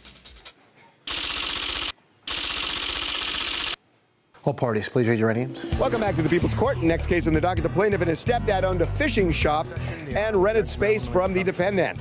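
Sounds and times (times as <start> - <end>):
typewriter-style clatter: 1.1 - 3.8.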